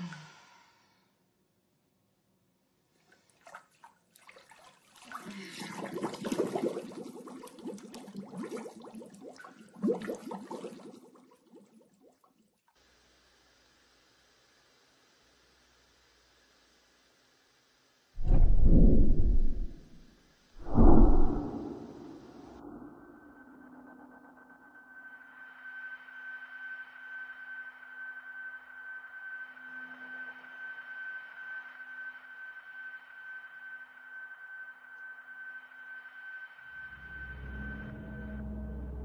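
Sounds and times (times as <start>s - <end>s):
loud deep hits: 18.2s - 20.0s
low rumble: 18.2s - 20.0s, 20.6s - 23.2s.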